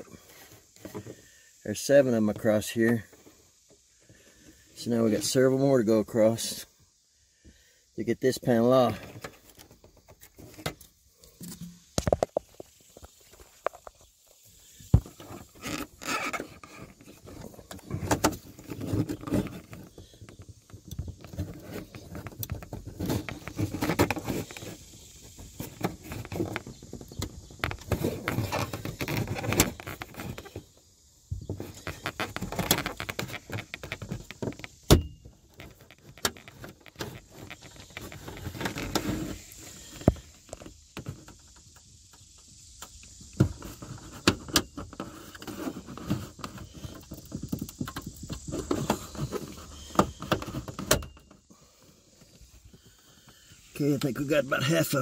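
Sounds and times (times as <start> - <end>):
plastic scraping on plastic: 8.8 - 14.0, 14.8 - 30.7, 31.4 - 34.8, 35.5 - 41.4, 43.4 - 51.0.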